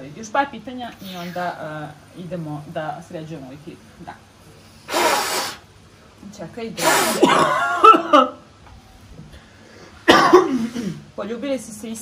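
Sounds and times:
person coughing: 0:06.8 - 0:08.3, 0:10.0 - 0:11.0.

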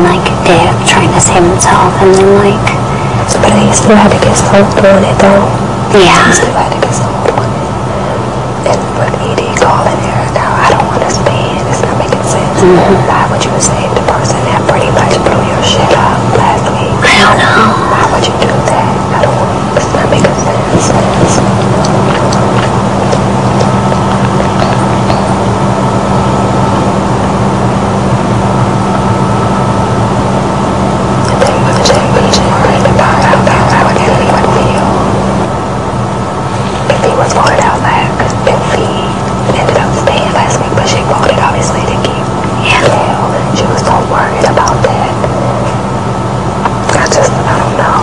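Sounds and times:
women talking indistinctly: 0:00.0 - 0:25.4, 0:31.3 - 0:35.0
constant tones: 0:00.0 - 0:48.0
loud background hum: 0:00.0 - 0:48.0.

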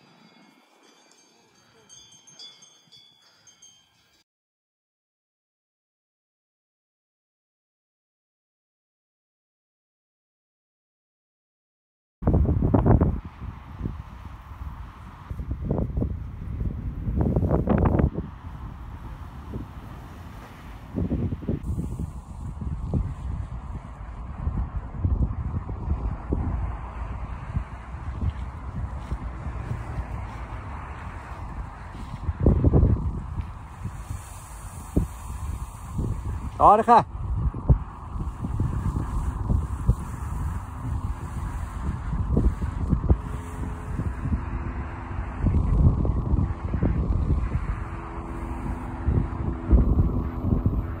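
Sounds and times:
wind buffeting microphone: 0:12.2 - 0:51.0.

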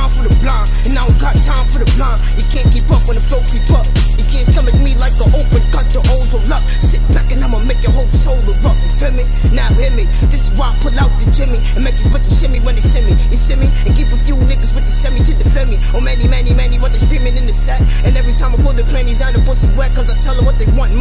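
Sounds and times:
rapping over a beat: 0:00.0 - 0:21.0.

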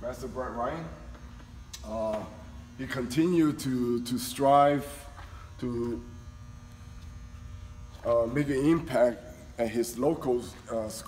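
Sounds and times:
electrical buzz: 0:00.0 - 0:11.0.

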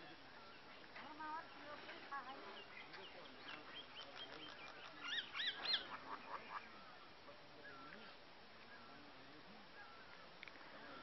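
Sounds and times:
birds chirping and calling: 0:00.3 - 0:09.2.

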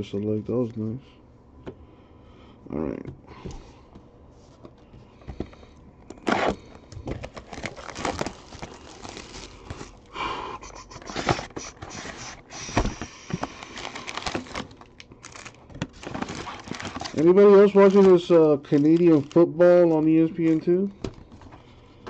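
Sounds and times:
packaging rustle: 0:06.2 - 0:10.1, 0:10.9 - 0:21.5.

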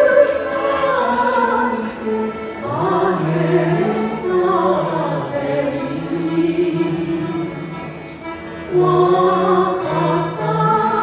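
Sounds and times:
man and woman singing: 0:00.0 - 0:07.7, 0:08.7 - 0:11.0
accordion: 0:00.0 - 0:11.0.

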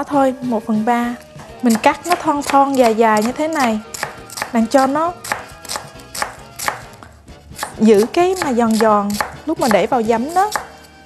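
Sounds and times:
knife slicing onion on cutting board: 0:01.2 - 0:11.0.

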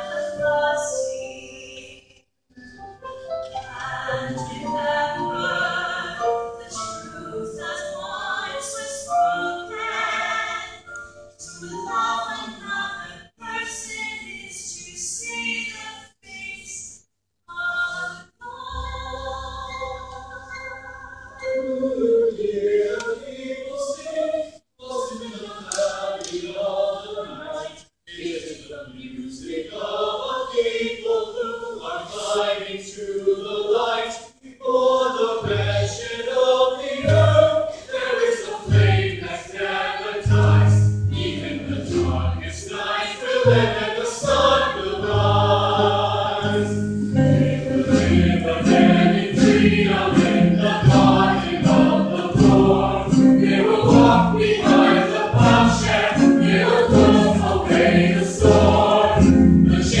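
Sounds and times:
chorus singing with accompaniment: 0:00.0 - 0:02.1, 0:03.5 - 0:15.8, 0:17.5 - 1:00.0.

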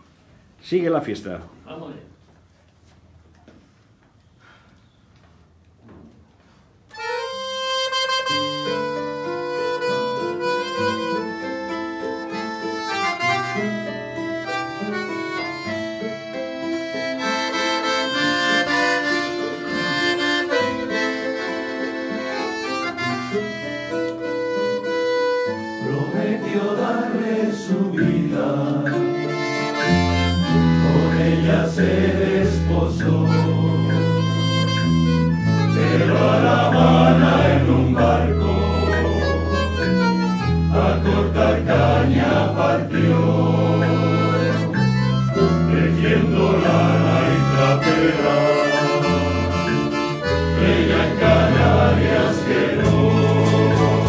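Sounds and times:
accordion melody: 0:06.9 - 0:54.0
guitars and lutes: 0:08.0 - 0:54.0
male choir singing: 0:25.7 - 0:29.5, 0:30.5 - 0:34.5, 0:35.7 - 0:39.9, 0:40.7 - 0:44.8, 0:45.5 - 0:54.0.

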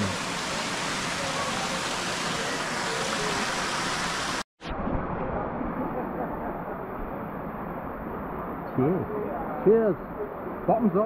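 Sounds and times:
flowing water rushing: 0:00.0 - 0:04.5.

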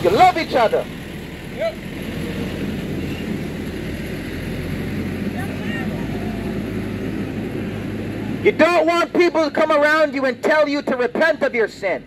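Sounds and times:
motor vehicle engine rumble: 0:00.0 - 0:12.0.

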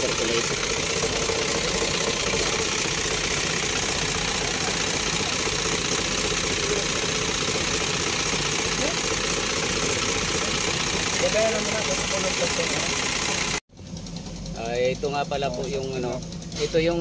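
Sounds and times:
truck engine idling: 0:00.0 - 0:17.0.

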